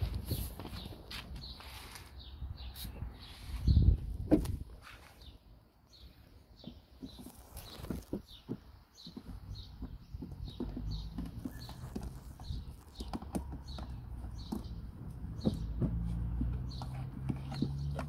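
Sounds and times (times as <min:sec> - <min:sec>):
puppy claws clicking on concrete: 0:07.1 - 0:18.0.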